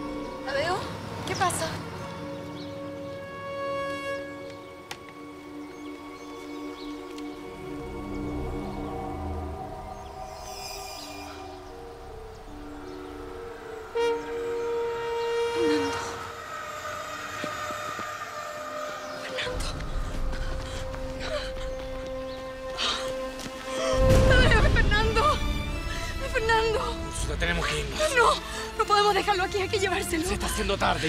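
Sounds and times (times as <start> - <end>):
dramatic music with held notes: 0.0 - 31.0.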